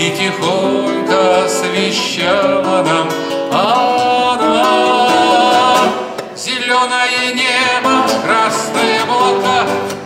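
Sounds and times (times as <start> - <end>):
man singing: 0.0 - 10.0
strummed classical guitar: 0.0 - 10.0.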